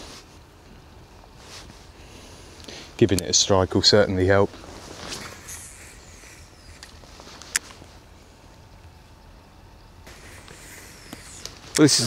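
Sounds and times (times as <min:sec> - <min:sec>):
fishing line whine off reel: 0:04.9 - 0:07.6, 0:10.1 - 0:12.0.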